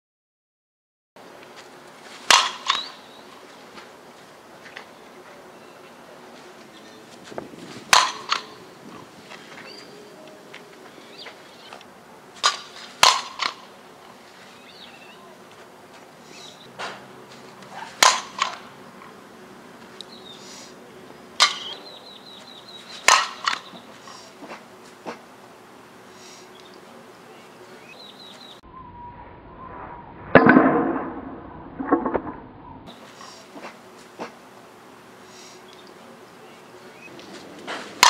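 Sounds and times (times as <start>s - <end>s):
bat cracking a ball: 2.2s - 3.1s, 7.4s - 9.1s, 12.4s - 13.8s, 16.7s - 19.2s, 21.4s - 21.8s, 22.8s - 25.3s, 37.6s - 38.0s.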